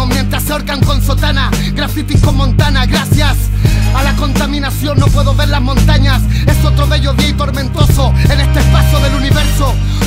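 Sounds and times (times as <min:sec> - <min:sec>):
rapping over a beat: 0:00.0 - 0:10.0.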